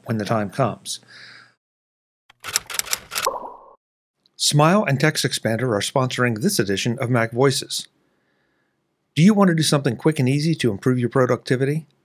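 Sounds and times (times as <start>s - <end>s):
quick run of sharp clicks: 2.3s - 3.4s.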